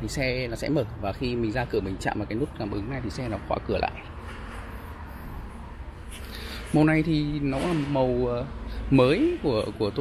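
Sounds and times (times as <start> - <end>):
open car lot ambience: 0.0 - 10.0.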